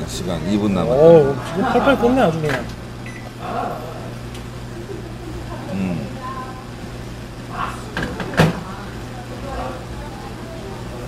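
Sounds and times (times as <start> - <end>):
low electrical hum of machine: 0.0 - 11.0.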